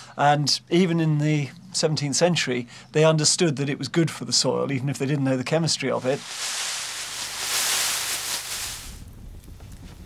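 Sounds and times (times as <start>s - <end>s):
dry vines rustling: 5.9s - 10.0s.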